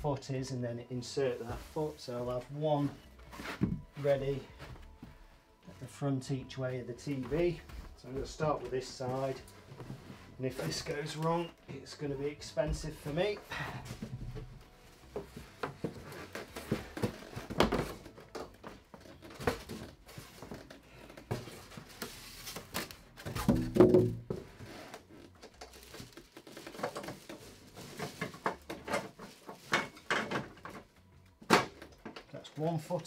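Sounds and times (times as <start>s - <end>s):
cardboard and plastic packing rustles: 0.0s - 33.0s.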